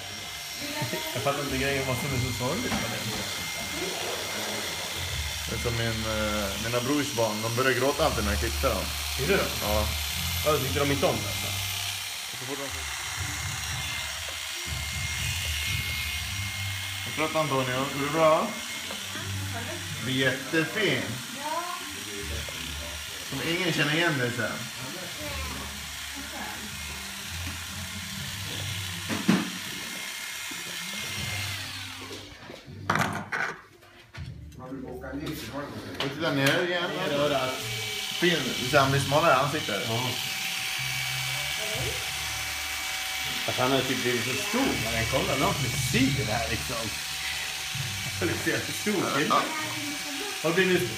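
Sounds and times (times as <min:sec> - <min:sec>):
electric hair clippers humming: 0:00.0 - 0:32.6, 0:36.4 - 0:50.9.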